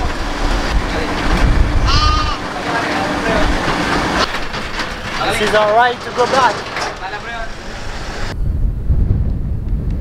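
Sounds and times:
truck bed and frame rattling: 0.0s - 8.3s
truck engine and road rumble: 0.0s - 10.0s.

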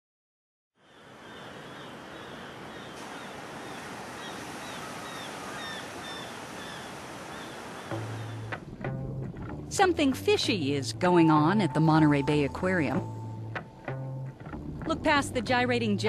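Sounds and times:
ocean surf: 0.8s - 8.8s.

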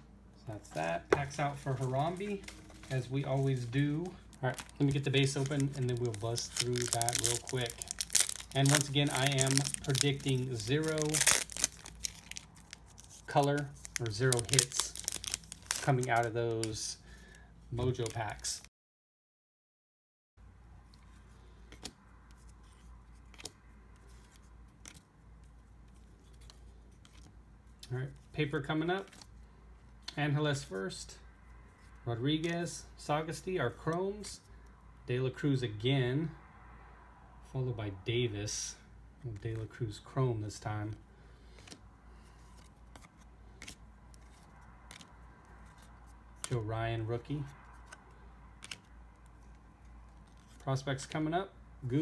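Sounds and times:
low steady hum: 0.0s - 18.7s.

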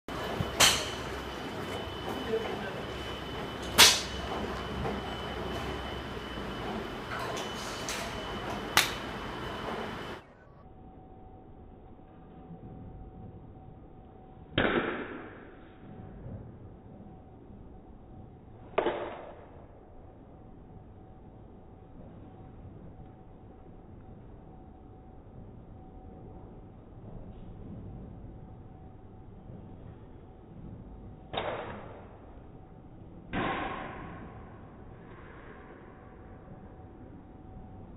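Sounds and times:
golf club striking ball: 0.5s - 1.2s.

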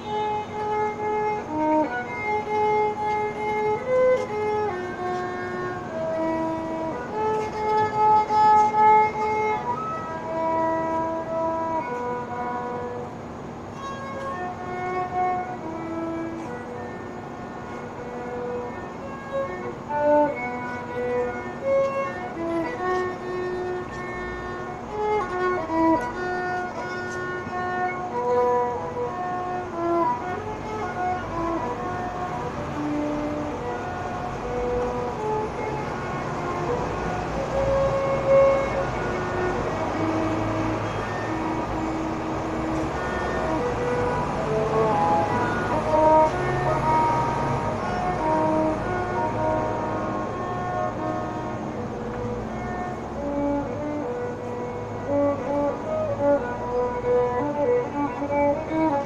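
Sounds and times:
violin melody: 0.0s - 59.0s.

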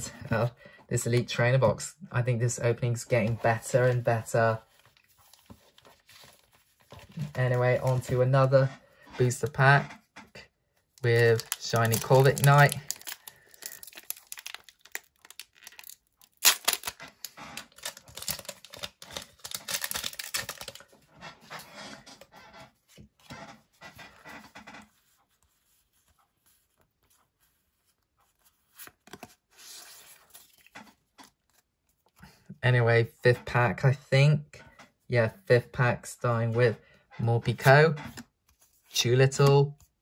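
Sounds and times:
foil wrapper crinkling: 11.0s - 20.9s
foil wrapper tearing: 11.2s - 20.9s.

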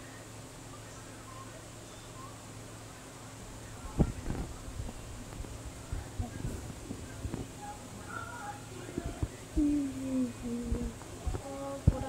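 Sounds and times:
woman humming: 9.6s - 12.0s.

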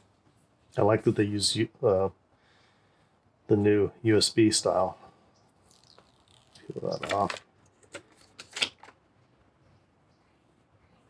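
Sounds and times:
man talking: 0.8s - 2.2s, 3.5s - 5.0s, 6.6s - 7.4s.

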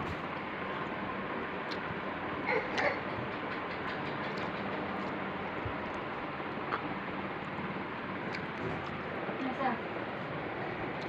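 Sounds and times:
moving vehicle rumble and hiss: 0.0s - 11.0s.

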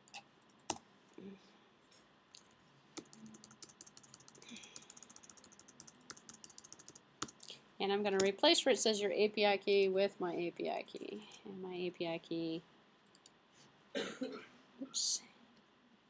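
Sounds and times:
computer keyboard typing: 3.0s - 7.4s, 8.1s - 8.3s.

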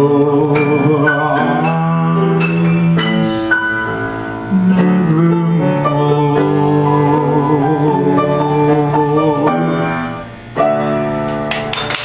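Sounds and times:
piano chords: 0.0s - 12.0s
applause: 11.3s - 12.0s.

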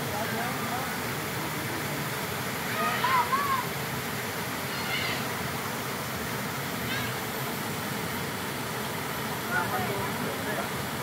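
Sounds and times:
waterfall pouring into pool: 0.0s - 11.0s.

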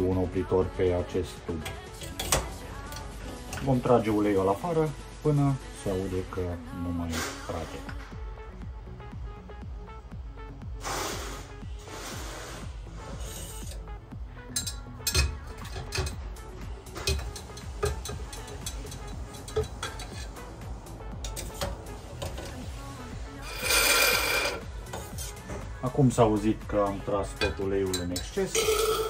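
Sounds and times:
syringe sucking oil: 10.8s - 13.9s, 23.4s - 25.4s.

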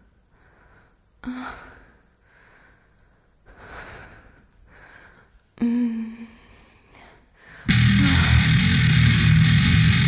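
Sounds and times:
woman's heavy breathing: 0.2s - 7.7s.

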